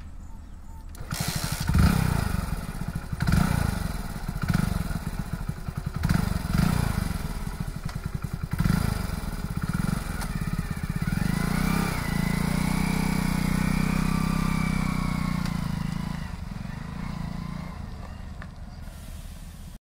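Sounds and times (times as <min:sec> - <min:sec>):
motorcycle engine revving: 0:00.1 - 0:19.8.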